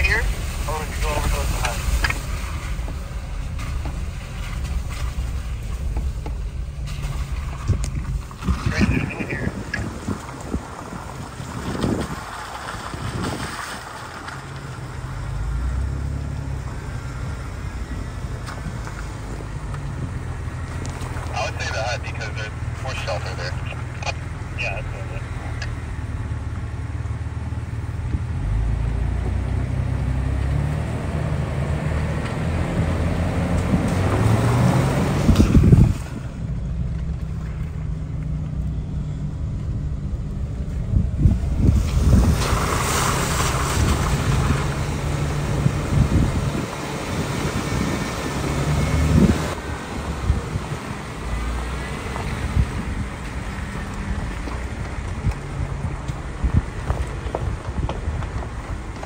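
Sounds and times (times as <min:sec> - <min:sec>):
engine running at low speed: 0:00.0 - 0:12.7, 0:14.0 - 0:59.0.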